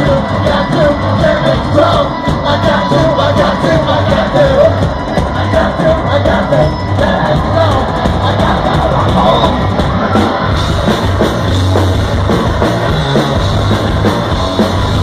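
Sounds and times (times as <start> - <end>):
person singing: 0.0 - 10.4
live rock band playing: 0.0 - 15.0.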